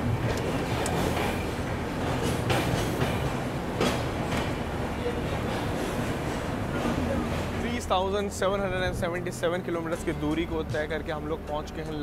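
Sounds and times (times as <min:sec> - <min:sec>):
wheel clacks over rail joints: 0:00.0 - 0:07.9
train rolling rumble: 0:00.0 - 0:12.0.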